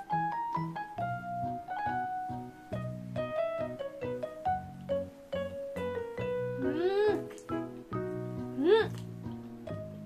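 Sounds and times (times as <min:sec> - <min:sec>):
plucked background music: 0:00.0 - 0:10.0.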